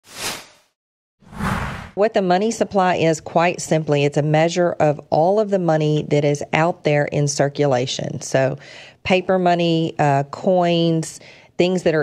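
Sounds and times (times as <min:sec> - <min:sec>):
whoosh sound effects: 0:00.0 - 0:00.7, 0:01.3 - 0:02.0.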